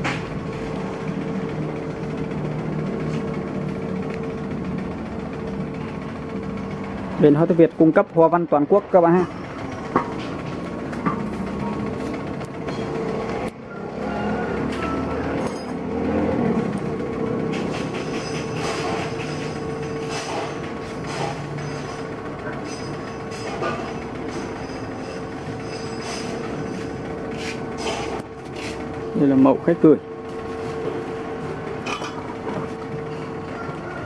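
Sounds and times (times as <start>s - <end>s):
workshop machinery hum: 0.0s - 34.0s.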